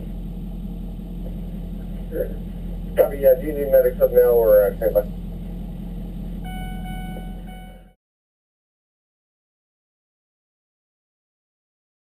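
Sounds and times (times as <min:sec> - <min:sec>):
vehicle engine idling: 0:00.0 - 0:08.0
steady electronic tone: 0:05.1 - 0:08.0.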